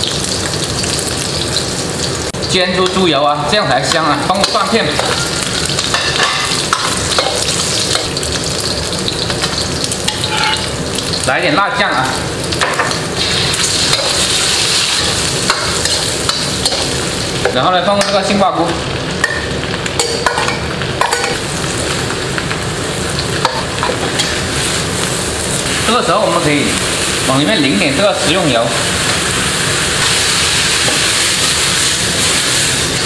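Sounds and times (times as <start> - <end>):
pork sizzling in a wok: 0.0 - 33.0
metal ladle scraping a wok: 10.1 - 10.7.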